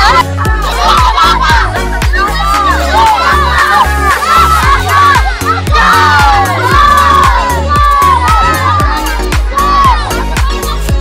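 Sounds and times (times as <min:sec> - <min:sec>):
children shouting and cheering: 0:00.0 - 0:11.0
loud music with heavy beat: 0:00.0 - 0:11.0.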